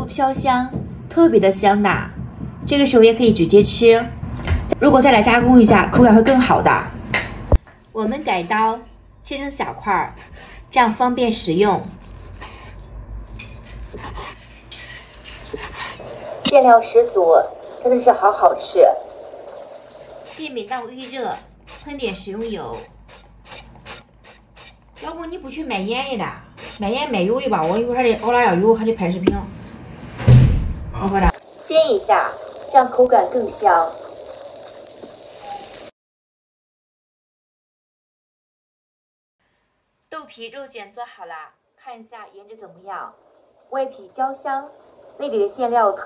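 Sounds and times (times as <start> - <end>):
knife cutting on wooden board: 13.6 - 14.4, 20.3 - 25.2, 26.6 - 26.9
oil sizzling on a griddle: 31.1 - 35.9.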